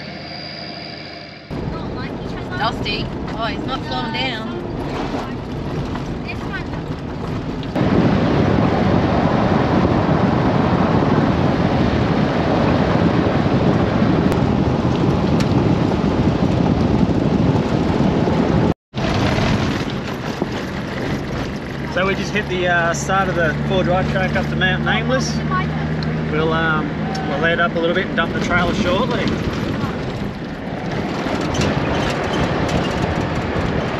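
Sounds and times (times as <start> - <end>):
wind buffeting microphone: 1.5 - 33.9
tyre roar on gravel: 19.0 - 23.6.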